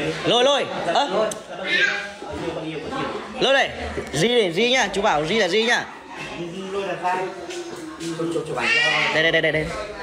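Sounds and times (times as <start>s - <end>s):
small child crying: 8.6s - 9.2s.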